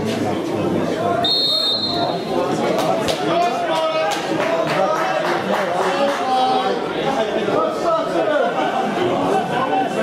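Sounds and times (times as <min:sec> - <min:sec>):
referee's whistle blast: 0:01.2 - 0:02.3.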